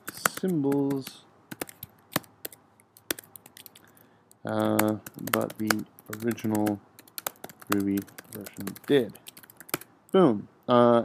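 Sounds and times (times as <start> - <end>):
computer keyboard keystrokes: 0.0 - 4.0, 4.6 - 9.9.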